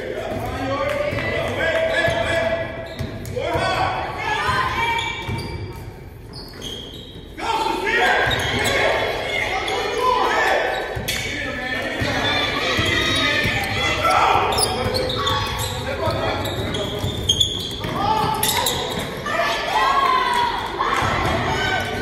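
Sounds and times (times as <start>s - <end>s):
echoing voices in a hall: 0.0s - 22.0s.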